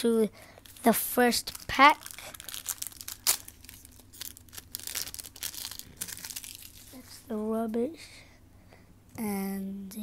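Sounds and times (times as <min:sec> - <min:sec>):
foil card pack crinkling: 0:00.6 - 0:07.0.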